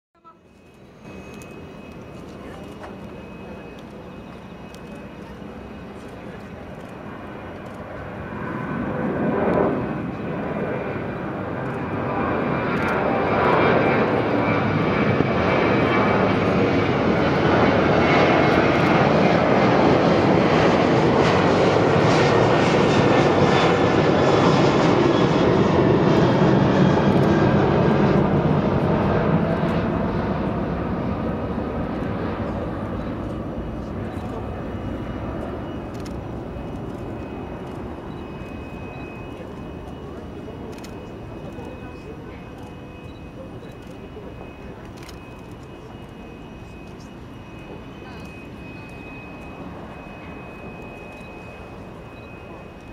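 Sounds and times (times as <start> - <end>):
faint whining tones: 0.2 - 19.9, 26.8 - 52.9
jet engines rushing: 0.3 - 52.9.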